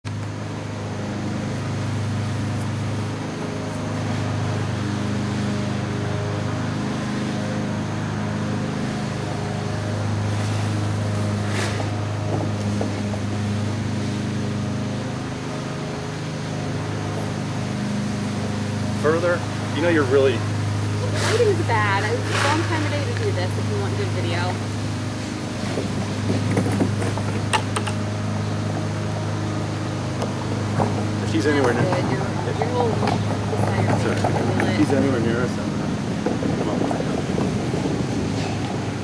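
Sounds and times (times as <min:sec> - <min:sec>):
low mechanical drone: 0:00.0 - 0:39.0.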